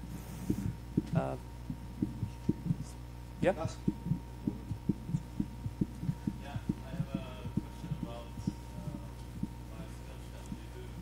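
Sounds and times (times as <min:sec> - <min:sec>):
low soft thumps: 0:00.4 - 0:02.9, 0:03.8 - 0:08.6, 0:09.3 - 0:09.6
distant speech: 0:06.3 - 0:11.0.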